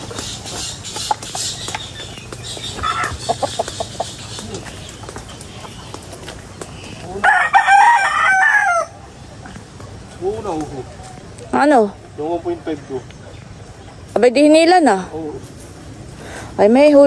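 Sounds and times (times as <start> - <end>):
chickens clucking: 0.0 - 14.2
rooster crowing: 7.2 - 9.0.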